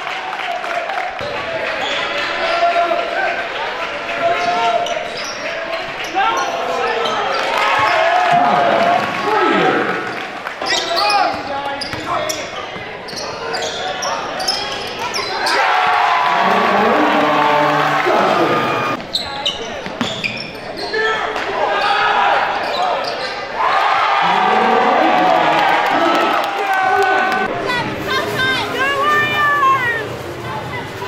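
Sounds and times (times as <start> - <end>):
sneakers squeaking on floor: 4.4 - 8.0, 10.6 - 15.6, 18.2 - 23.5
players shouting: 14.4 - 19.0, 20.8 - 27.5.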